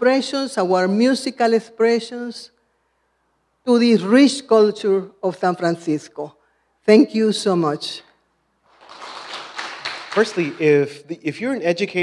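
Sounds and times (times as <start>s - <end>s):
audience applause: 8.7s - 10.7s.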